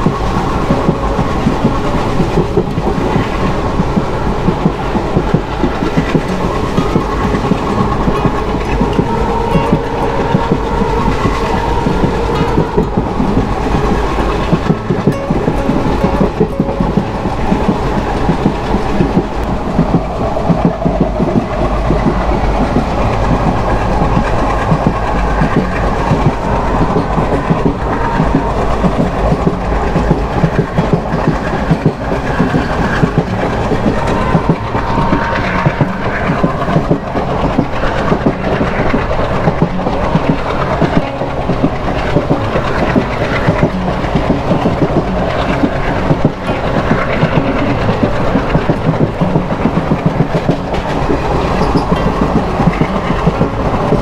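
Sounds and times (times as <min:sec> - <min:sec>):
train wheels clickety-clack on rails: 0:00.0 - 0:54.0.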